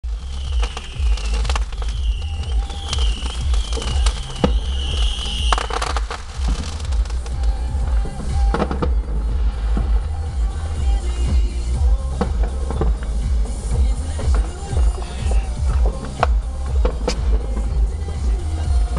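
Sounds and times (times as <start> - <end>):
fireworks popping and crackling: 0.0 - 18.9
music with heavy bass: 0.0 - 18.9
high wavering firework whistle: 0.1 - 10.8.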